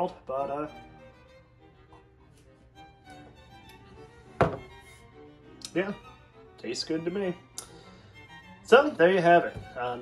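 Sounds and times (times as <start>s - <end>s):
soft violin music: 0.0s - 10.0s
cup knocking on countertop: 4.4s - 4.7s.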